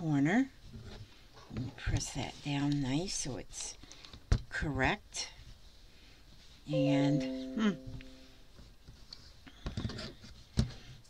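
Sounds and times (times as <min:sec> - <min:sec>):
soft clicks and rustles of handling: 0:03.7 - 0:04.4.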